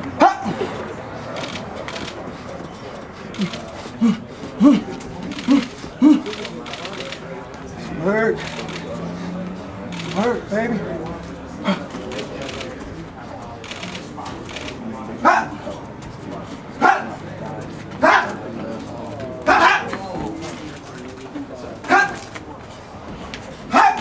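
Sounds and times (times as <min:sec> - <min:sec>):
low gym murmur: 0:00.0 - 0:24.0.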